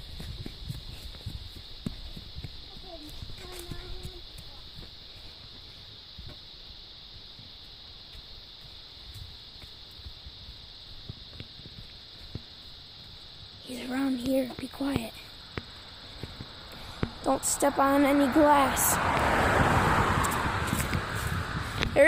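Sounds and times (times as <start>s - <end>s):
footsteps on grass and gravel: 0.0s - 22.0s.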